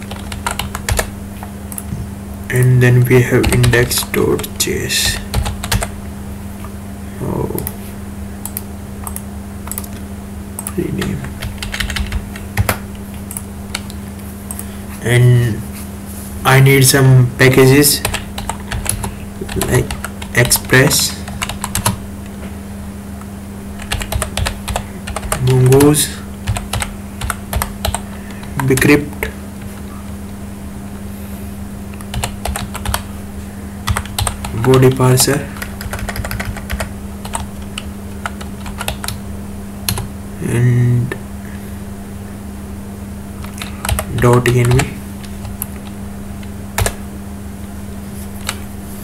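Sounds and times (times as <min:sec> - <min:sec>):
keyboard typing: 0:00.0 - 0:01.1, 0:03.4 - 0:05.9, 0:08.4 - 0:10.0, 0:10.6 - 0:14.6, 0:18.0 - 0:22.0, 0:23.8 - 0:29.8, 0:32.0 - 0:33.1, 0:33.8 - 0:39.2, 0:39.9 - 0:40.1, 0:43.4 - 0:46.0, 0:46.8 - 0:47.0
steady low hum: 0:00.0 - 0:49.0
keyboard and mouse clicking: 0:08.4 - 0:10.0, 0:10.6 - 0:14.6.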